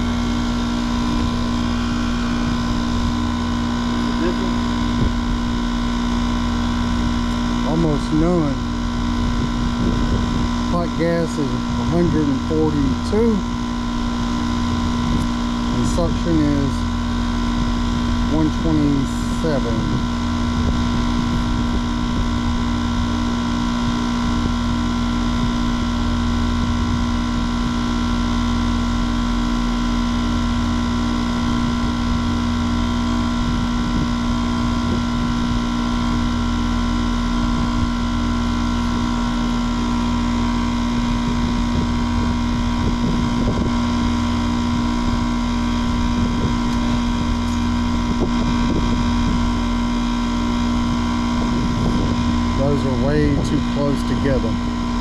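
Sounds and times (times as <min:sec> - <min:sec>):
air conditioner unit humming: 0:00.0 - 0:55.0.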